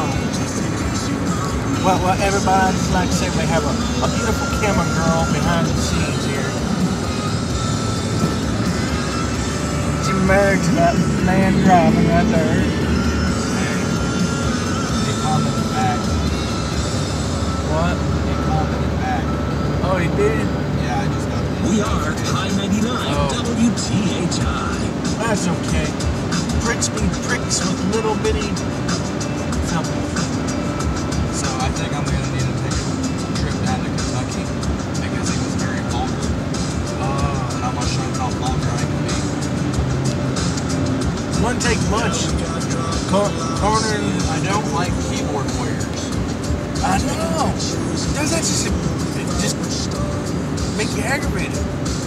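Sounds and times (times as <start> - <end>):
people talking: 0.0 - 6.6, 9.8 - 16.5, 17.6 - 28.7, 29.5 - 30.3, 31.3 - 39.5, 41.3 - 46.1, 46.8 - 51.6
car road and engine noise: 0.0 - 52.0
music playing: 0.0 - 52.0.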